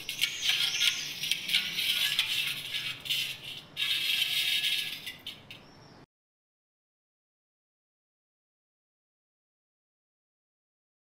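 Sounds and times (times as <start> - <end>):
mirror glass clattering: 0.0 - 5.6.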